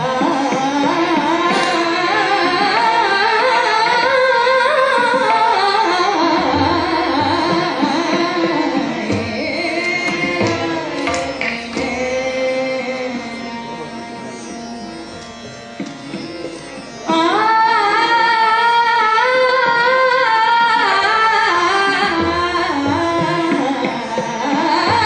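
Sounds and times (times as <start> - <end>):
woman singing: 0.0 - 13.3, 17.1 - 25.0
harmonium: 0.0 - 25.0
tabla: 0.0 - 25.0
tanpura drone: 0.0 - 25.0.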